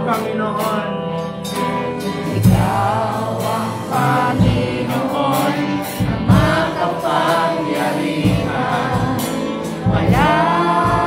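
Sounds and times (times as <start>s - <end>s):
band playing steady beat: 0.0s - 11.0s
choir singing gospel song: 1.3s - 11.0s.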